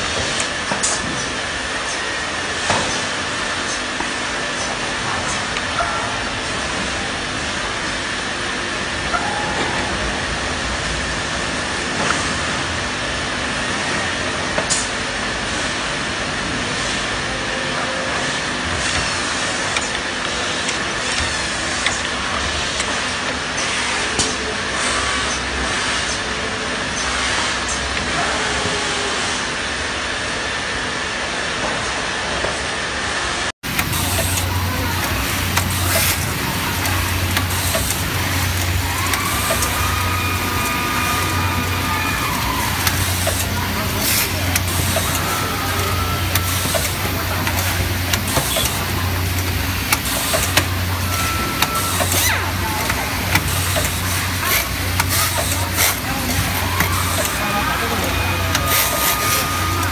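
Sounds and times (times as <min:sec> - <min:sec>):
deep steady hum: 0:33.6 - 0:59.9
steady mechanical din: 0:33.6 - 0:59.9
brief machine whine: 0:33.7 - 0:59.9
sharp clicks of screwdriving robots: 0:33.7 - 0:59.9.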